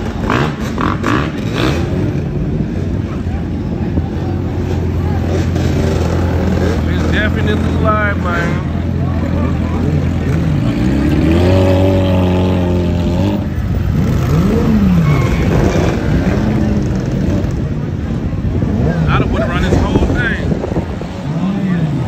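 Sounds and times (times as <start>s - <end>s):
crowd talking: 0.0s - 22.0s
motorcycle engines revving: 0.0s - 22.0s.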